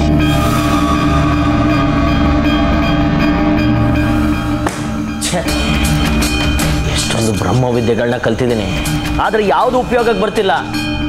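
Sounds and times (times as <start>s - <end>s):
sustained droning chord: 0.0s - 11.0s.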